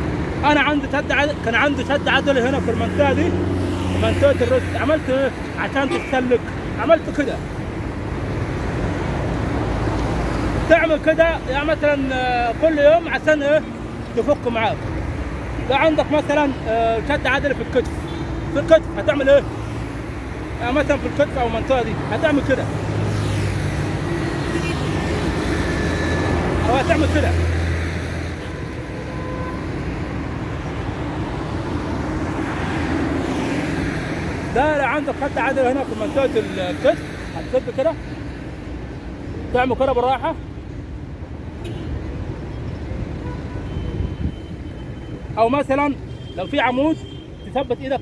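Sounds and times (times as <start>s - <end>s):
road traffic rumble: 0.0s - 48.0s.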